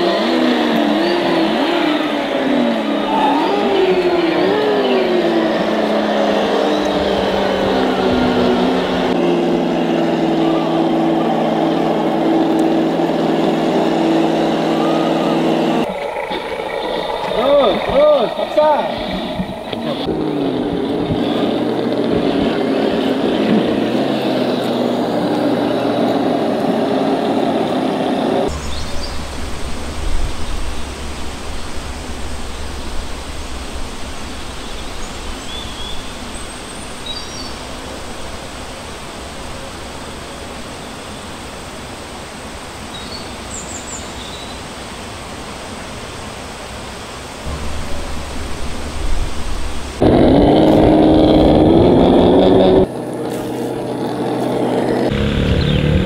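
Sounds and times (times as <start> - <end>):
motor whine rising in pitch: 0.0 - 37.5, 47.5 - 56.0
low hum: 2.0 - 39.7, 47.4 - 56.0
bird chirps: 28.5 - 29.7.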